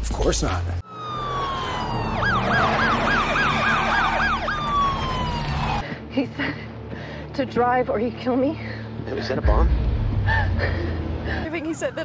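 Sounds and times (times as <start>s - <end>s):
police siren wailing and yelping: 0.8s - 5.8s.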